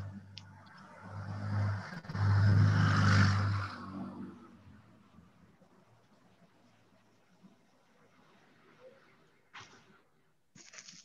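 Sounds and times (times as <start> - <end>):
vehicle passing by: 0.0 - 5.2.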